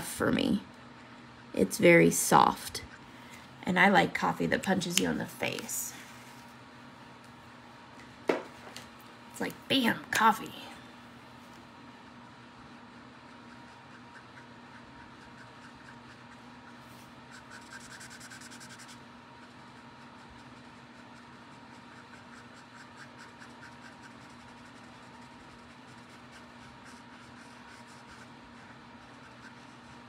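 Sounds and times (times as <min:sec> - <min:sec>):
steady low hum: 0:00.0 - 0:30.0
marker nib scratching on card: 0:13.1 - 0:30.0.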